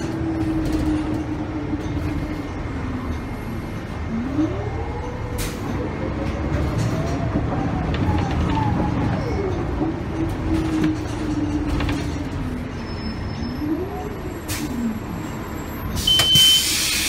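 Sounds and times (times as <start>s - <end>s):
bus drivetrain rumble and whine: 0.0s - 17.0s.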